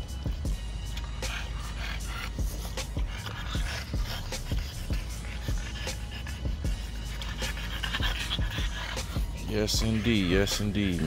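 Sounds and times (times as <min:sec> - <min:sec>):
background music with steady beat: 0:00.0 - 0:11.0
dogs panting: 0:00.0 - 0:11.0.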